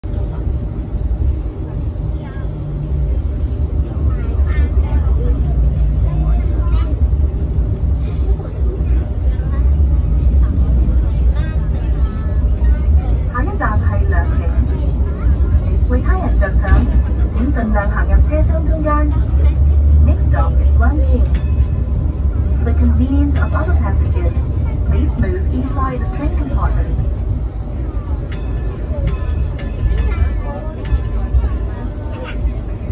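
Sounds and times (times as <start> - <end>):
recorded announcement: 0.0 - 32.9
train rumbling on track: 0.0 - 32.9
voices: 0.1 - 32.9.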